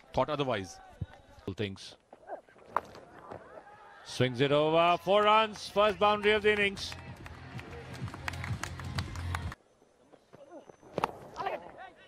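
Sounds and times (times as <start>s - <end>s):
hand clapping: 5.5s - 9.6s.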